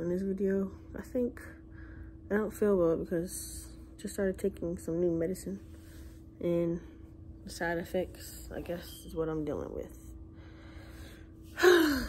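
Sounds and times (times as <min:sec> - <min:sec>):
woman sighing: 0:11.5 - 0:12.0.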